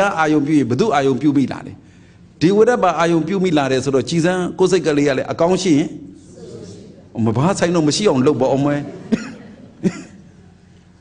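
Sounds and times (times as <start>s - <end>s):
man coughing: 8.8s - 10.4s.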